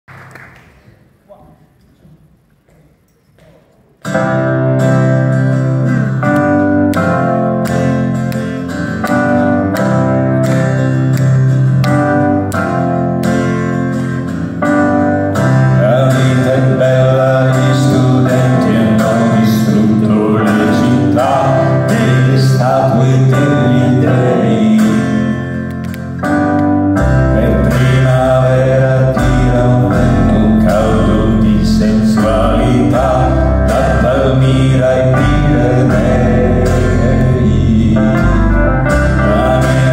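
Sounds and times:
acoustic guitar: 0:03.3 - 0:39.9
person singing: 0:15.7 - 0:25.7, 0:27.1 - 0:39.9
deep bass: 0:27.0 - 0:39.9.

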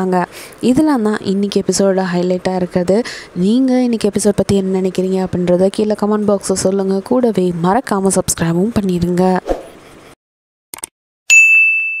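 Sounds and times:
bright bell ding: 0:11.3 - 0:12.0.

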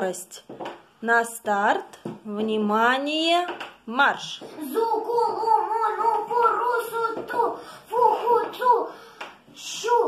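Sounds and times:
girl reading syllables aloud: 0:04.2 - 0:10.0.

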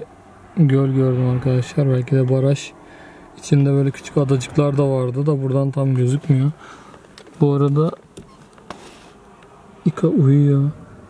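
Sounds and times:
car cabin road noise: 0:00.0 - 0:11.0
man speaking: 0:00.6 - 0:02.8, 0:03.4 - 0:06.6, 0:07.4 - 0:08.0, 0:09.9 - 0:10.8.

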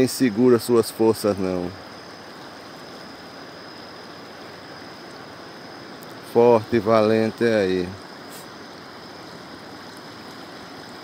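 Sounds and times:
flood water rushing: 0:00.0 - 0:11.0.

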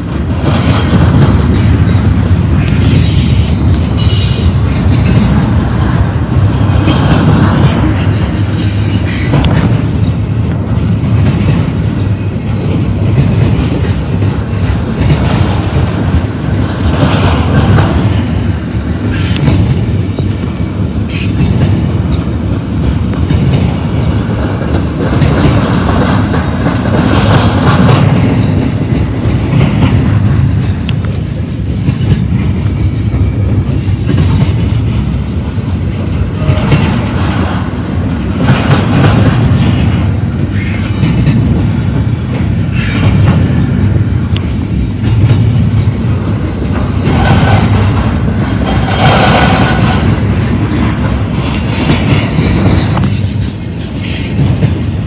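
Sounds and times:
freight train wheels on rail: 0:00.0 - 0:55.0.

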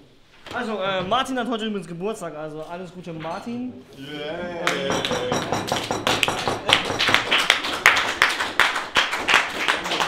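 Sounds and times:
people clapping: 0:04.6 - 0:10.0.

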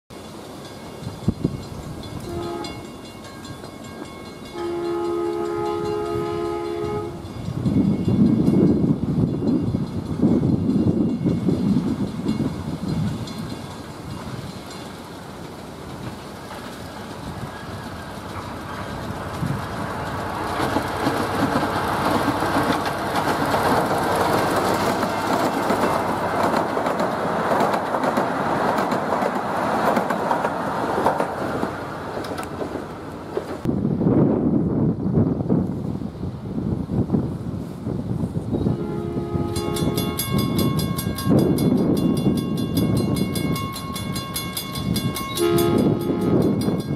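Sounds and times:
train wheels clacking on rails: 0:00.1 - 0:33.7, 0:39.5 - 0:46.9
miniature train horn: 0:02.2 - 0:02.9, 0:04.4 - 0:07.3, 0:38.6 - 0:40.4, 0:45.3 - 0:46.6.

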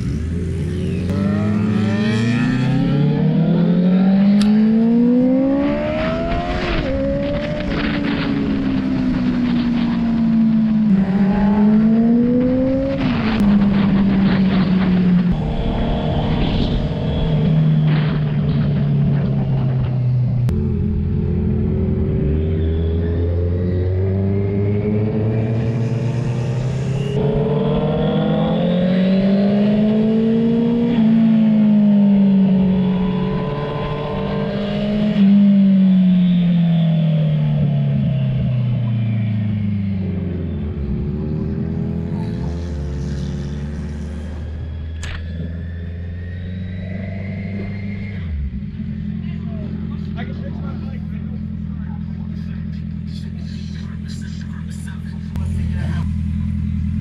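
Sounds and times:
motorbike engines accelerating: 0:00.0 - 0:57.0.

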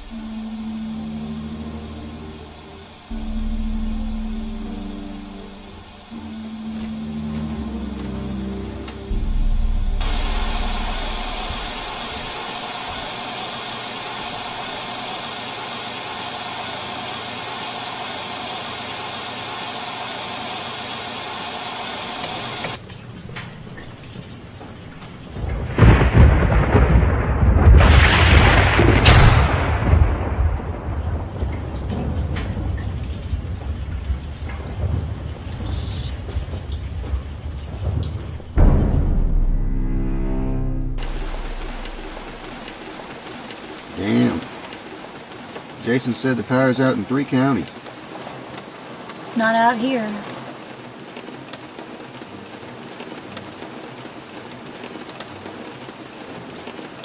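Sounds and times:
thunder rumbling: 0:00.0 - 0:15.7, 0:22.7 - 0:45.8
rain hissing: 0:00.0 - 0:57.0
sharp thunder crack: 0:09.0 - 0:13.1, 0:25.4 - 0:44.6.

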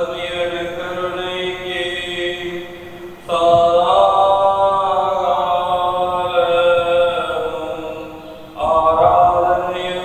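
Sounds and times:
slow liturgical chant: 0:00.0 - 0:10.0.

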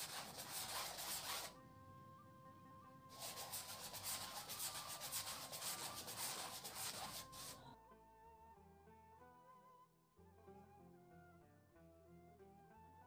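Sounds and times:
paintbrush rubbing on canvas: 0:00.0 - 0:01.6, 0:03.1 - 0:07.7.

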